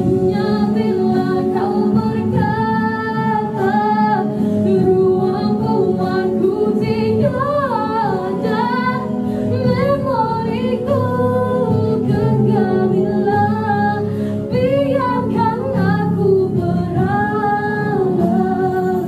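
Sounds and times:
musical accompaniment: 0:00.0 - 0:19.0
woman singing into microphone: 0:00.0 - 0:19.0.

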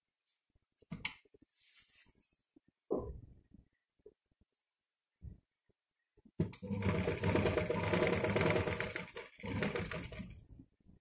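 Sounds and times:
sewing machine stitching: 0:06.4 - 0:10.4.

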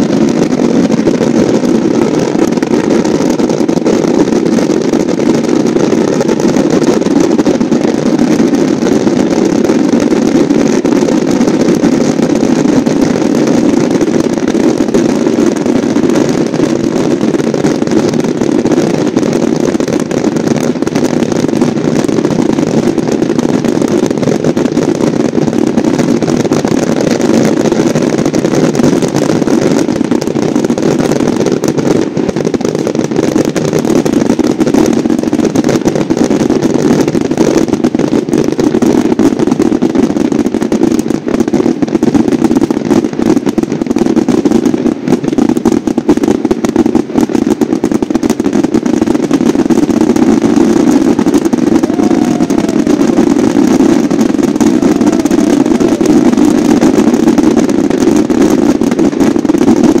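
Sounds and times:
rockets firing with crackling pops: 0:00.0 - 1:00.0.

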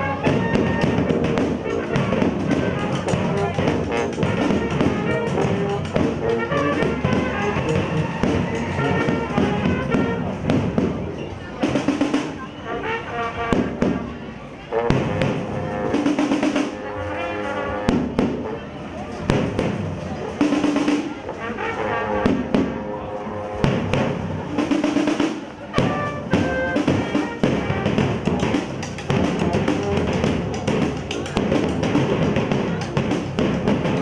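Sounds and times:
surdo drums beating: 0:00.0 - 0:12.6, 0:13.4 - 0:16.9, 0:17.8 - 0:18.5, 0:19.2 - 0:21.6, 0:22.2 - 0:22.9, 0:23.6 - 0:34.0
brass band playing: 0:00.0 - 0:34.0.

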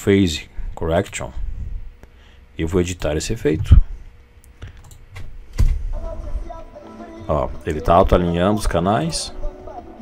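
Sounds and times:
music playback: 0:05.9 - 0:10.0.

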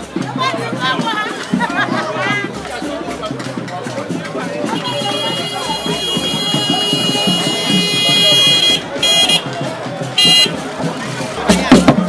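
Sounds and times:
crowd voices: 0:00.0 - 0:12.0
loud drum or wood-block strokes: 0:00.0 - 0:12.0
high-pitched horn blasts: 0:04.8 - 0:09.5.

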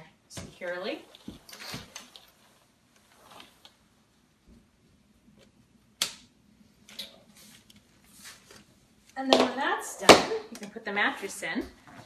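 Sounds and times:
mesh fabric rustling: 0:01.0 - 0:04.0.

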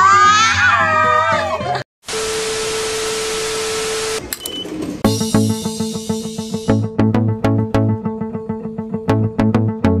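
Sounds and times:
tv static hiss: 0:02.1 - 0:04.2
background music: 0:05.0 - 0:10.0.

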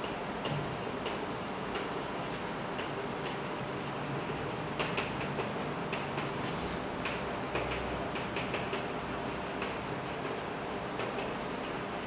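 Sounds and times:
chalk tapping on blackboard: 0:00.0 - 0:12.0.

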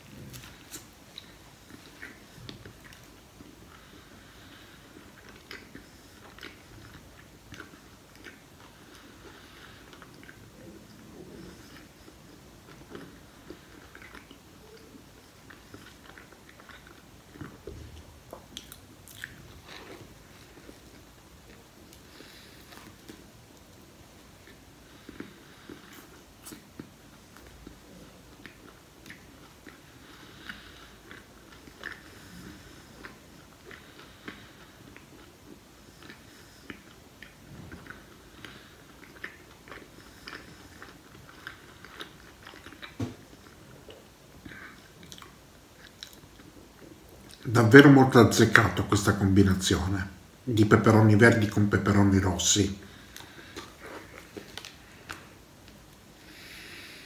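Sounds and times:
person chewing bread roll: 0:00.0 - 0:52.0, 0:52.6 - 0:57.0.

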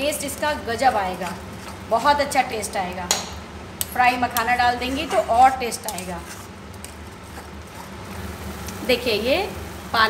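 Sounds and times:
faint sizzling: 0:00.0 - 0:10.0
spoon scraping thick paste: 0:01.2 - 0:02.2, 0:04.8 - 0:08.1.

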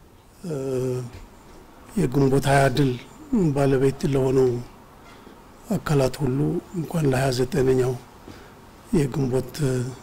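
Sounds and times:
man making a hesitant hum: 0:00.4 - 0:01.4, 0:02.1 - 0:05.2.

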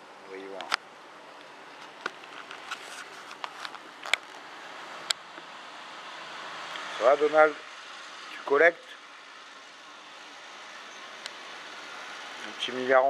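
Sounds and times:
outdoor background hiss: 0:00.0 - 0:13.0.

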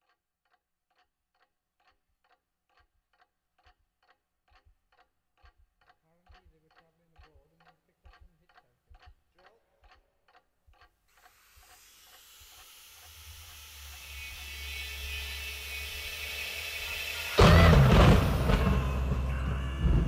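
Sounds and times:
clock ticking: 0:00.0 - 0:20.0
hiss and low drone: 0:11.4 - 0:20.0
loud booming music hit: 0:17.2 - 0:20.0.

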